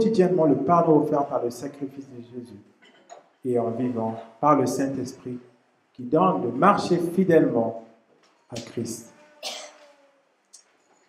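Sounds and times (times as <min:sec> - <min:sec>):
man coughing into microphone: 0:09.4 - 0:09.8.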